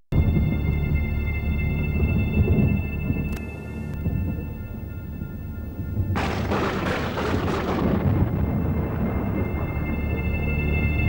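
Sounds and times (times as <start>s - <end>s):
deep rolling rumble: 0.1s - 11.0s.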